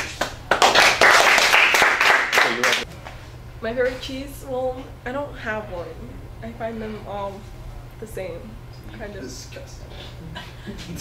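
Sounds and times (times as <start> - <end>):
people clapping: 0.0 - 2.9.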